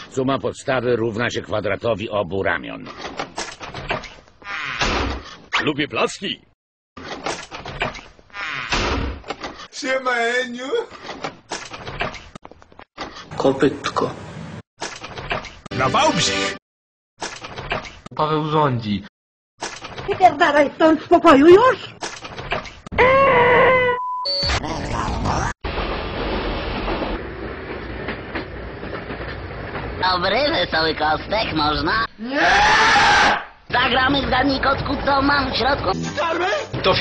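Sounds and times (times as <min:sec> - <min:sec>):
train carriage rumbling: 0:25.7 - 0:31.9
faint train clacks: 0:26.8 - 0:30.3.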